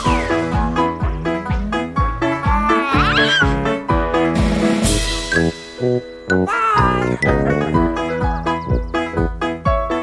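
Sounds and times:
children's theme music: 0.0s - 10.0s.

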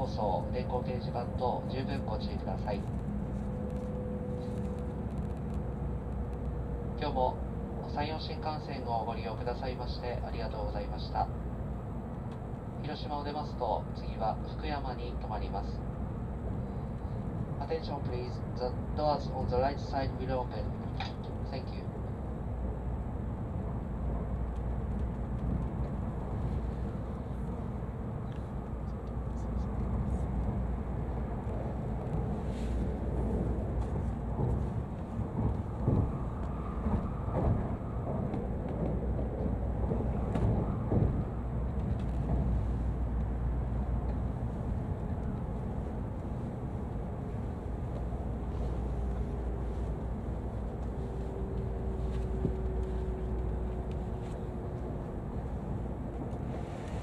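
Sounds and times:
train cabin rumble: 0.0s - 57.0s.

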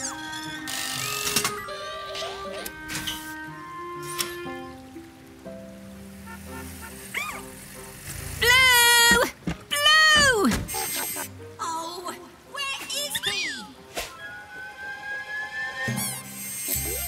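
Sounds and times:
light cartoon music: 0.0s - 17.0s.

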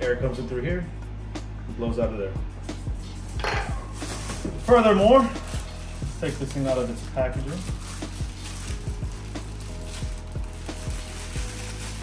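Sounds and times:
soft background music: 0.0s - 12.0s
plastic bag crinkling: 3.9s - 12.0s.

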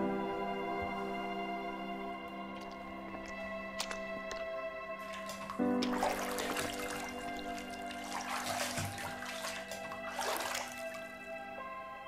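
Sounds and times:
soft music of sustained tones: 0.0s - 12.0s
bathwater sloshing and splashing: 2.6s - 11.4s.

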